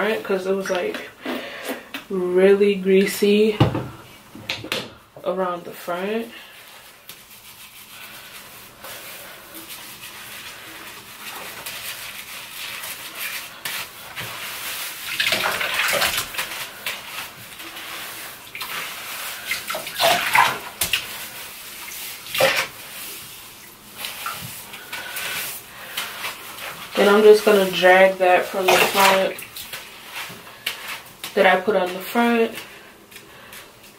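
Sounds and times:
wet squelching: 6.5s - 33.9s
water splashing and dripping: 9.6s - 31.4s.

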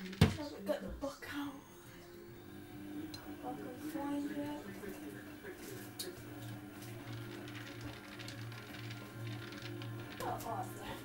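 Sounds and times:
washing machine drain pump humming: 2.3s - 11.0s.

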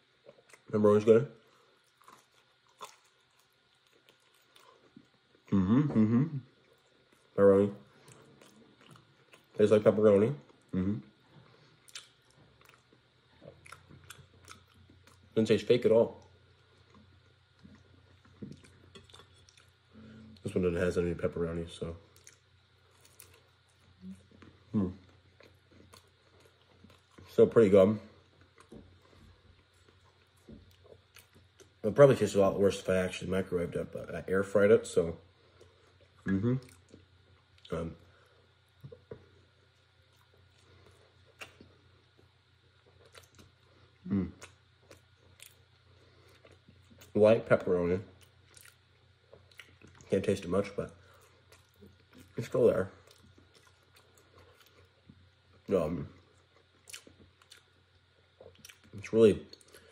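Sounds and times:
faint chewing: 0.2s - 0.7s, 1.4s - 5.9s, 6.5s - 15.4s, 16.2s - 20.6s, 22.0s - 31.8s, 35.3s - 59.9s.

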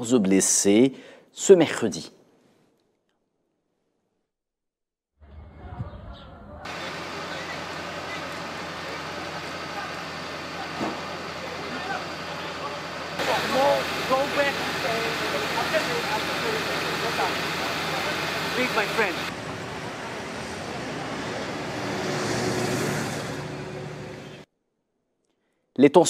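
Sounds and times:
people talking: 5.7s - 19.3s
motor vehicle passing by: 17.0s - 24.4s.

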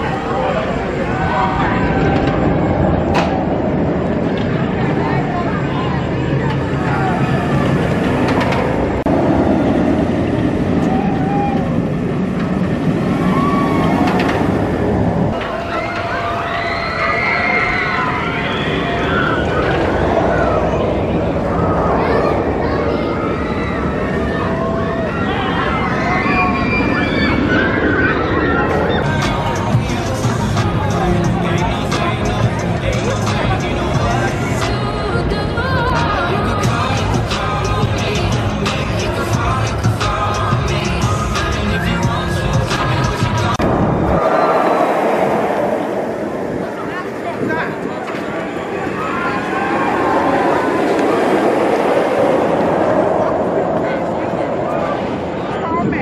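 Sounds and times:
roller coaster track noise: 0.0s - 56.0s
voices: 0.0s - 56.0s
riders screaming: 13.2s - 14.3s.

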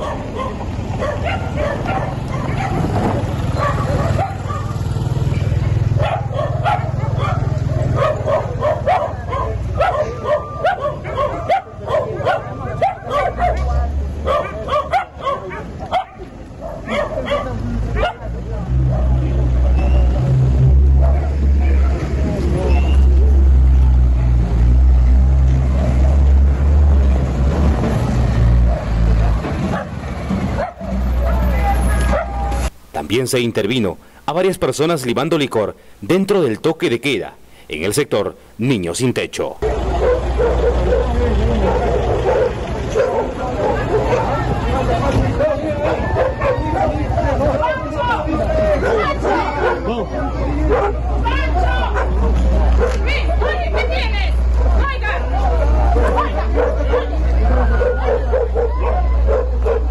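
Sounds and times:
dogs barking: 0.0s - 5.0s, 5.6s - 19.8s, 20.9s - 22.2s, 25.7s - 26.3s, 28.6s - 32.5s, 39.6s - 59.9s
truck engine rumble: 0.0s - 33.0s, 37.3s - 59.9s
people's voices: 0.0s - 59.9s.

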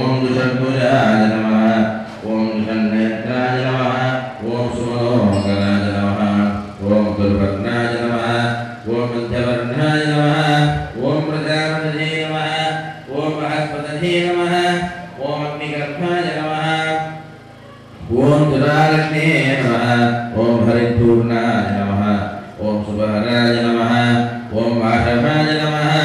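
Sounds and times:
men chanting mantras: 0.0s - 26.0s.

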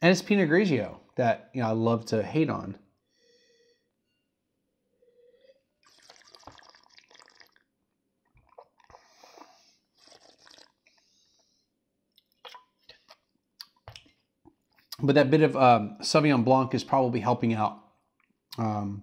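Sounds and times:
wine slurping in mouth: 5.8s - 7.7s, 8.4s - 11.0s.

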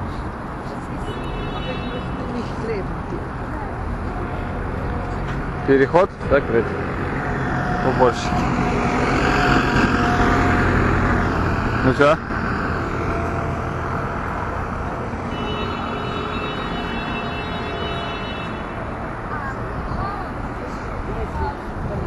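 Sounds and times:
street noise: 0.0s - 22.0s
street sweeper running: 0.0s - 22.0s
steady machine whine: 4.5s - 19.2s.

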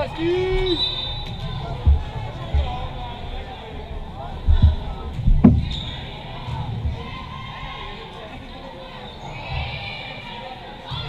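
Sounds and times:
people calling out: 0.0s - 11.0s.

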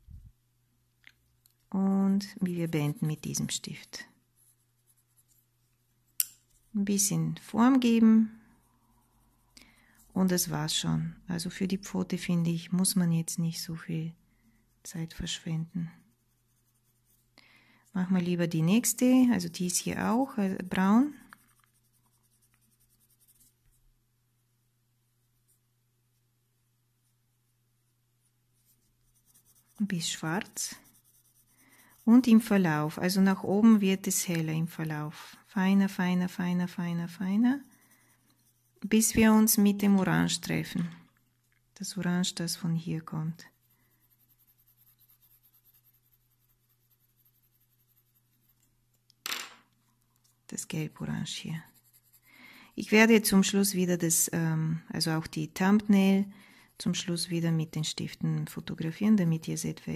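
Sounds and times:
coloured pencil scratching on paper: 2.2s - 5.7s, 6.5s - 10.8s, 12.4s - 23.8s, 28.2s - 40.8s, 41.9s - 49.0s, 50.4s - 54.3s, 55.0s - 59.6s.

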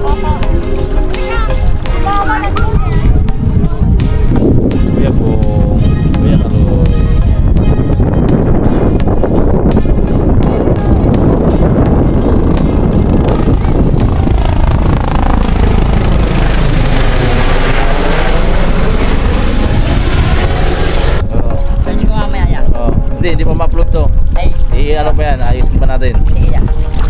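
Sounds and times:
helicopter rotor and engine: 10.5s - 21.3s.

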